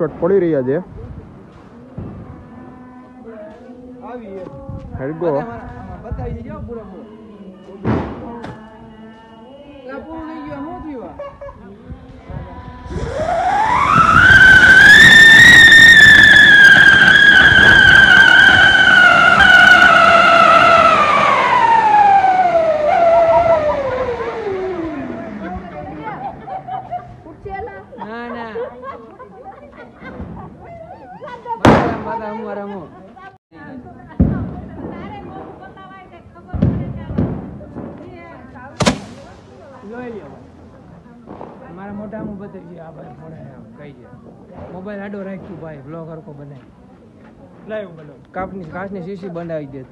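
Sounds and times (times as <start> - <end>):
firework whistle: 12.8 - 26.3
firework spark jet hissing: 38.8 - 39.8.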